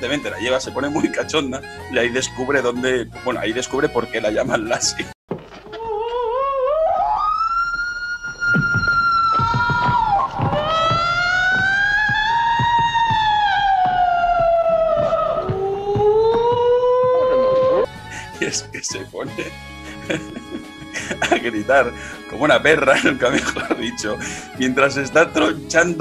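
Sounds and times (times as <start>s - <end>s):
knocking thumps: 5.3s - 6.2s, 8.2s - 17.9s
woman howling: 5.7s - 17.9s.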